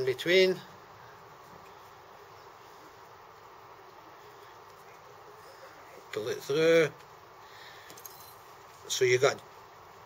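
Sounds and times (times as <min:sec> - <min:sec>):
man speaking: 0:06.1 - 0:07.0, 0:08.9 - 0:09.4.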